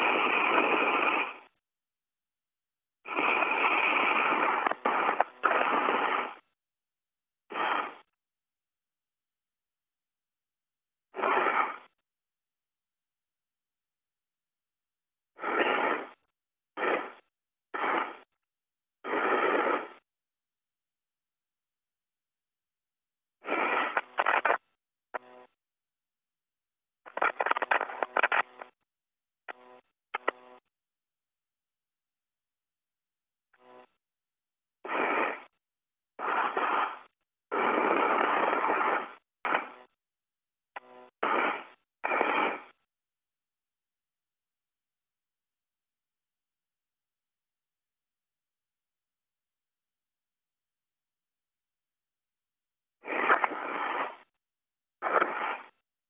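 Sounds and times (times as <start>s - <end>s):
radio hiss bursts: 0.0s - 1.6s, 3.1s - 6.6s, 7.5s - 8.2s, 11.1s - 12.0s, 15.4s - 18.4s, 19.0s - 20.1s, 23.4s - 25.6s, 27.0s - 28.8s, 34.8s - 35.6s, 36.2s - 40.0s, 40.8s - 42.9s, 53.0s - 54.3s, 55.0s - 55.8s.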